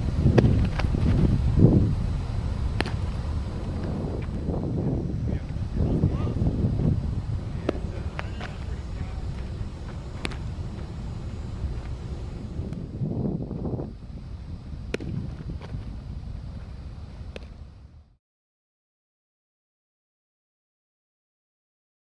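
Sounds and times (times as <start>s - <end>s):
wind on microphone: 0.0s - 17.7s
baseball smacking into glove: 2.8s - 3.1s, 7.6s - 8.6s, 10.2s - 10.4s, 14.9s - 15.8s
faint voices: 7.4s - 11.0s.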